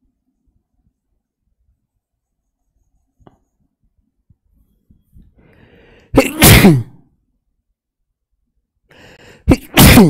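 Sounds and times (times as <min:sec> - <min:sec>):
drawn-in breath: 0:05.4 - 0:06.1
man sneezing: 0:06.1 - 0:07.0, 0:09.4 - 0:10.0.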